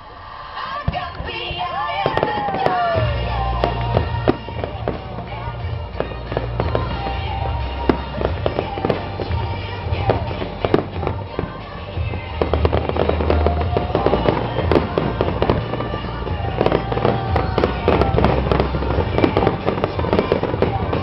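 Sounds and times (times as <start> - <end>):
fireworks bangs and crackles: 0.8 - 21.0.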